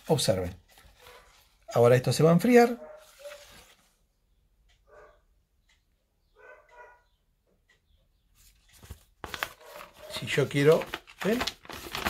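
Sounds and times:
plastic bag crinkling: 9.2s - 12.0s.

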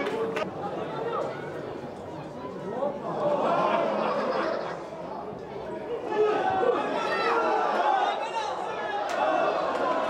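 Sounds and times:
crowd of spectators: 0.0s - 10.0s.

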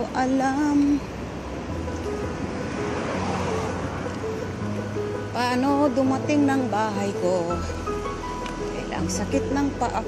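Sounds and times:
faint background music: 0.0s - 10.0s
street traffic noise: 0.0s - 10.0s.

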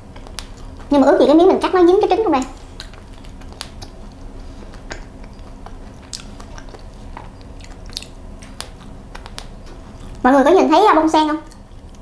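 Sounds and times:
person chewing: 0.0s - 0.9s, 2.4s - 10.2s, 11.5s - 12.0s
soft mouth clicks: 2.8s - 10.2s.

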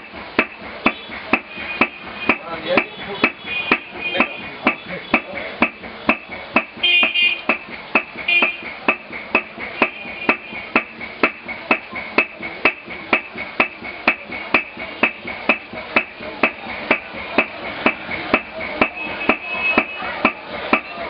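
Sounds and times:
hammer beating metal leaf: 0.0s - 21.0s.

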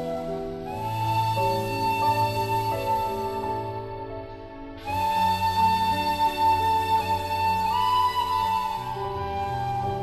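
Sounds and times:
bamboo flute melody: 0.0s - 10.0s.

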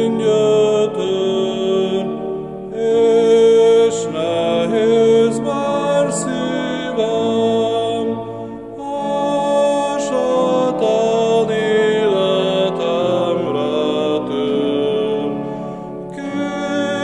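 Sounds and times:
man singing a hymn: 0.0s - 15.4s, 16.1s - 17.0s
sustained accompanying chords: 0.0s - 17.0s.

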